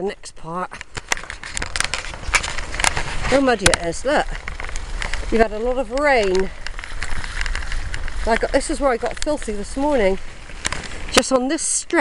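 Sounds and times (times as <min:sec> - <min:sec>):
sharp clicks and crackles: 0:00.6 - 0:12.0
bicycle tyres rumbling on track: 0:00.7 - 0:12.0.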